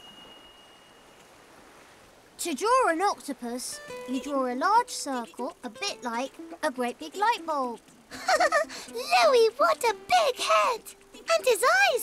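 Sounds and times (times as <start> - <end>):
thin high tone: 0.0 - 1.3
faint steady hiss: 0.0 - 12.0.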